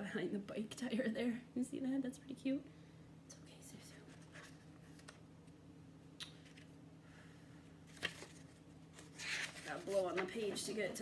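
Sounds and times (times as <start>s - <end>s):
paper pages being handled: 4.1s - 5.2s, 7.9s - 11.0s.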